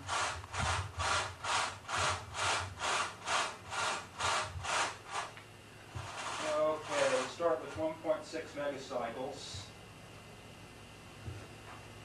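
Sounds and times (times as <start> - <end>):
rhythmic rasping strokes: 0.0 - 8.2
man talking: 6.4 - 9.7.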